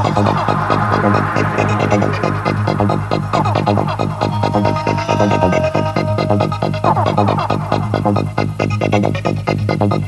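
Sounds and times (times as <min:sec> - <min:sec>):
electronic rave music: 0:00.0 - 0:10.0.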